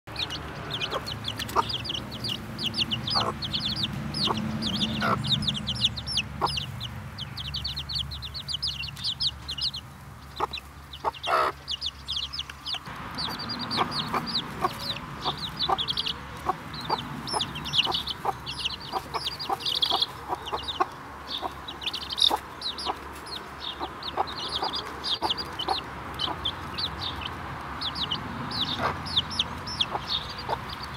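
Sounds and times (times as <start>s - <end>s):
chicks peeping: 0.1s - 30.9s
hen clucking: 0.1s - 30.9s.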